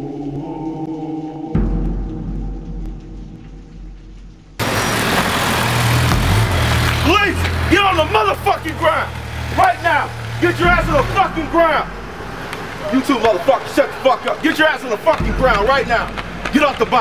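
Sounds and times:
low vehicle rumble: 1.6s - 17.0s
car engines idling: 4.6s - 17.0s
men shouting: 4.6s - 17.0s.

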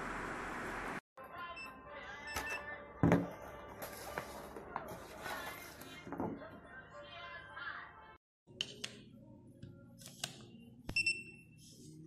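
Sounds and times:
high electronic beep: 10.9s - 11.5s.

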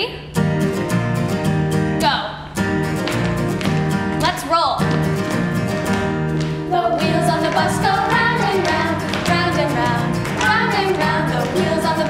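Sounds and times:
acoustic guitar strumming: 0.3s - 12.0s
woman speaking: 4.2s - 4.8s.

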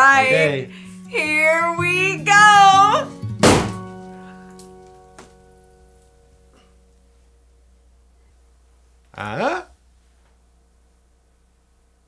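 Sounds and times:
held music chord: 0.0s - 7.2s
balloon popping: 3.4s - 3.9s.

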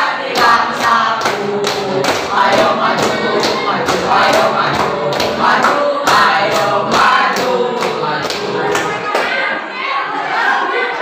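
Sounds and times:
boys singing a cheer: 0.0s - 11.0s
hands clapping in rhythm: 0.1s - 9.4s.

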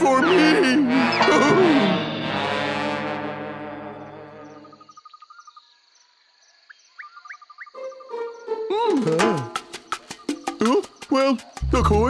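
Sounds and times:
held musical chord: 0.0s - 4.8s, 7.8s - 9.6s
insects chirping: 4.0s - 11.8s
bird tweets: 4.6s - 8.1s.

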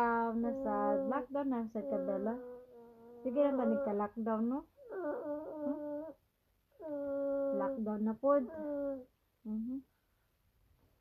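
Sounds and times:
person's wordless voice: 0.0s - 2.5s, 3.2s - 4.6s, 9.4s - 9.8s.

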